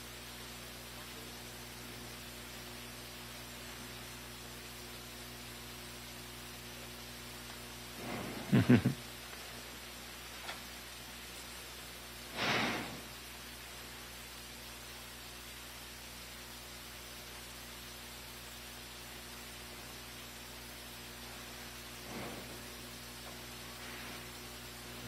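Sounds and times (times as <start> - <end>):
sound feed hiss: 0.0 - 25.0.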